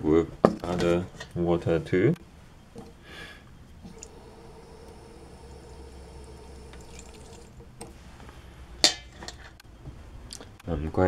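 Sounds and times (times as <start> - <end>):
tap water pouring into metal bowl: 3.8 - 7.6.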